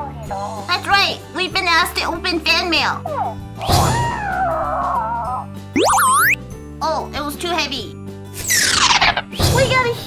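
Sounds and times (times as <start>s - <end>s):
cartoon boing sound effect: 5.8s - 6.4s
cheerful children's music: 5.8s - 6.4s.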